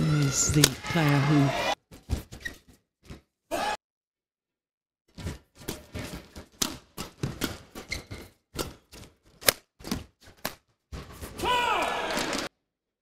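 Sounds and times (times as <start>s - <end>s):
shoe squeaks on court: 2.1s - 2.8s, 7.8s - 8.4s.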